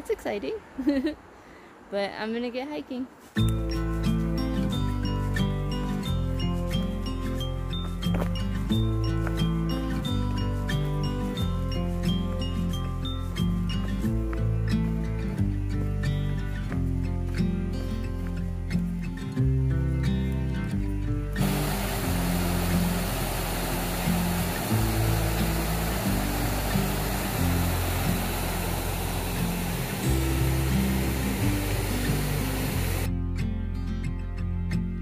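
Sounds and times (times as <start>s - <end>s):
background music with bass notes: 3.4s - 35.0s
stream pouring over rocks: 21.4s - 33.1s.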